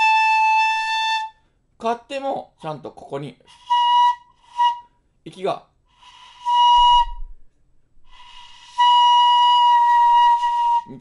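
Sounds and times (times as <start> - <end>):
bamboo flute notes: 0.0 - 1.4, 3.5 - 5.0, 6.0 - 7.4, 8.1 - 11.0.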